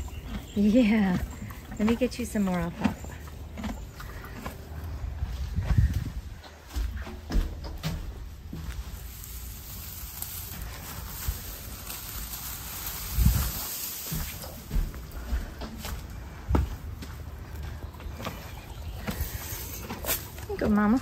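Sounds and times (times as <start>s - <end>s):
footsteps: 1.2s - 21.0s
hay rustling: 8.2s - 16.0s.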